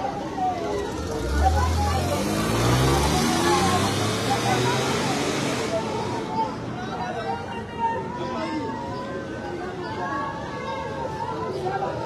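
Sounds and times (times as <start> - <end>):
crowd voices: 0.0 - 12.0
vehicle engine speeding up: 0.8 - 5.8.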